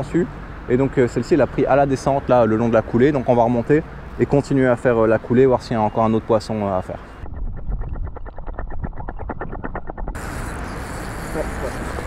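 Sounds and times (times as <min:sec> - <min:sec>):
outdoor background noise: 0:00.0 - 0:12.0
fishing reel ticking: 0:10.2 - 0:12.0.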